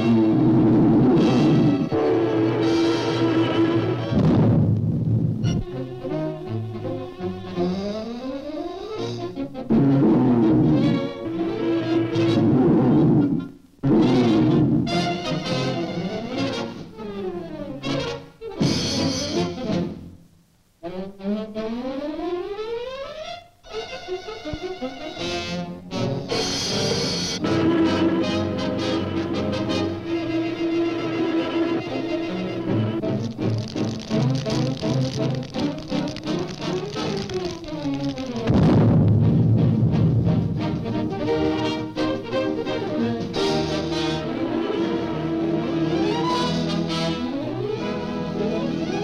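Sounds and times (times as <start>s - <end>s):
cartoon brass orchestral music: 0.0s - 4.2s, 5.4s - 20.1s, 20.8s - 38.8s, 39.5s - 49.0s
loud low timpani crash: 0.6s - 5.6s, 38.4s - 41.7s.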